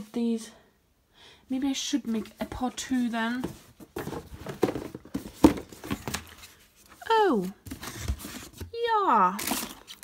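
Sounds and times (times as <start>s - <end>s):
cardboard boxes knocking and scraping: 3.1s - 6.5s.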